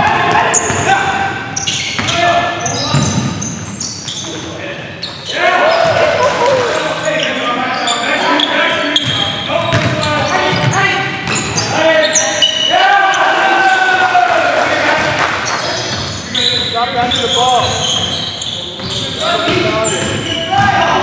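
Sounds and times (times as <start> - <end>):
basketball bouncing on court: 0.0 - 0.9, 2.0 - 2.2, 2.9 - 4.2, 9.0 - 11.7, 18.8 - 21.0
players' voices and calls: 0.0 - 21.0.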